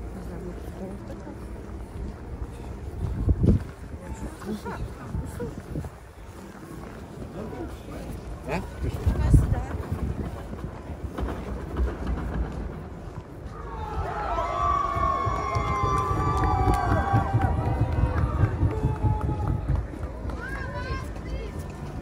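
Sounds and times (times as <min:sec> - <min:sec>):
footsteps on snow: 0:00.0 - 0:10.4
passers-by talking: 0:00.0 - 0:22.0
wind rumbling on microphone: 0:00.0 - 0:22.0.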